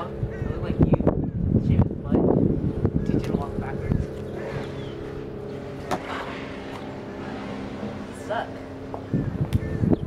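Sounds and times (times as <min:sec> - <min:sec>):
engine hum: 0:00.0 - 0:10.0.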